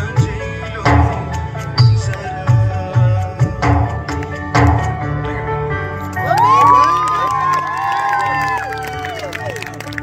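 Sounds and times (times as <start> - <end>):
audience cheering and whooping: 6.2 - 10.0.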